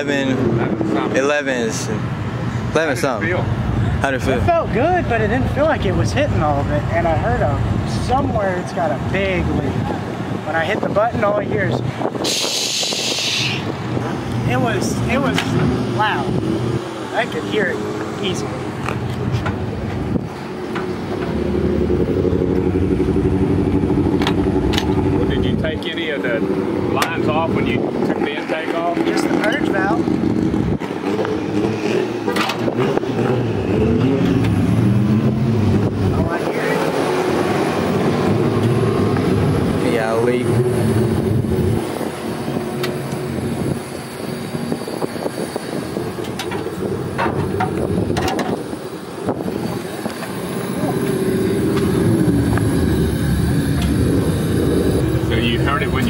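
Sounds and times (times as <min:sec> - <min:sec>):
people talking: 0:00.0 - 0:02.0, 0:02.7 - 0:13.6, 0:14.4 - 0:16.4, 0:17.1 - 0:18.6, 0:25.1 - 0:30.0, 0:36.1 - 0:37.0, 0:39.7 - 0:40.6, 0:50.6 - 0:51.2, 0:55.2 - 0:56.0
car engine running: 0:17.1 - 0:56.0.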